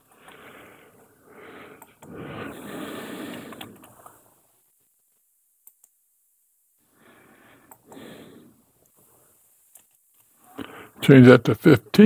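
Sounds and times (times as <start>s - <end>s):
man breathing close to microphone: 0.0s - 4.4s, 6.8s - 9.4s.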